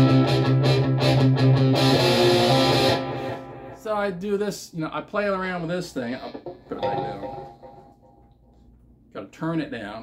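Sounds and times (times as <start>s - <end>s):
electric guitar strumming chords: 0.0s - 3.8s, 6.1s - 8.0s.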